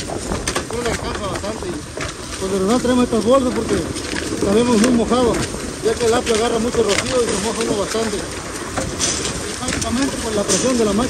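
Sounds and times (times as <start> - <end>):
harvesting machine running: 0.0 - 11.0.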